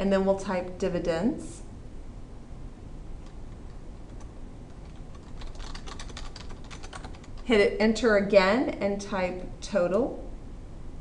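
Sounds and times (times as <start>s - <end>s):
low steady hum: 0.0s - 11.0s
computer keyboard typing: 3.2s - 7.5s.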